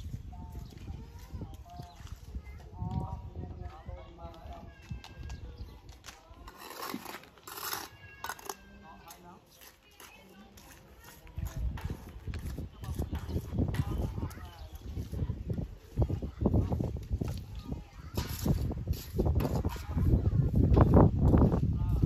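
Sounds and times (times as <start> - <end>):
distant people talking: 0.0 - 22.0.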